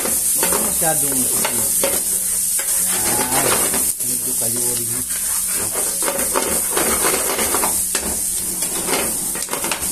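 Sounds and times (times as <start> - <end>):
metal spatula scraping a pan: 0.0 - 3.9, 5.0 - 9.9
onions sizzling in oil: 0.0 - 9.9.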